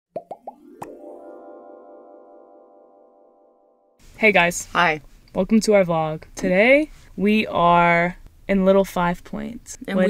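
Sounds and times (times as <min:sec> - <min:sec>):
cartoon bubble pops: 0:00.2 - 0:01.0
held musical chord: 0:00.6 - 0:04.0.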